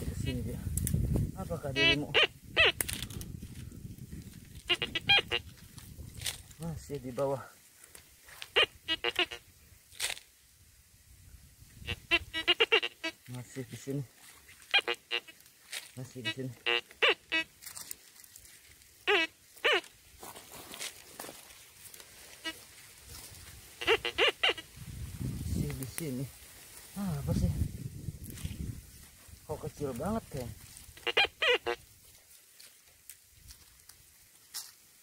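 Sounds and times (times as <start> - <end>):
metal detector warbling tones: 1.7 - 3.0, 4.6 - 5.5, 8.5 - 9.4, 11.8 - 13.2, 14.7 - 15.4, 16.2 - 17.5, 23.8 - 24.6, 31.0 - 31.8.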